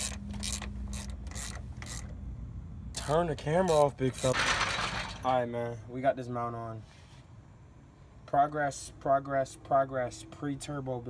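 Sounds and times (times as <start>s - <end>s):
socket ratchet clicking: 0.0s - 2.1s.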